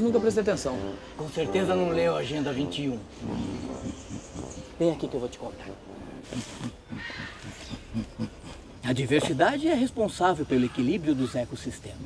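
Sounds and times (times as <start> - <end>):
ape-like grunts: 3.2 - 4.8, 6.2 - 9.4.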